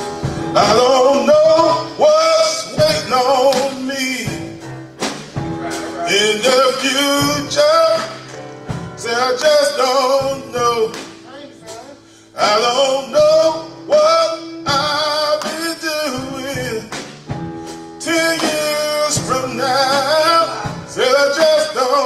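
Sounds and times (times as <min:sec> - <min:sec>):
men's gospel chorus singing: 0:00.4 - 0:04.8, 0:05.4 - 0:11.0, 0:12.3 - 0:17.0, 0:18.0 - 0:22.0
lead male voice singing: 0:00.5 - 0:04.5, 0:05.6 - 0:08.4, 0:09.0 - 0:11.0, 0:12.4 - 0:16.9, 0:18.0 - 0:22.0.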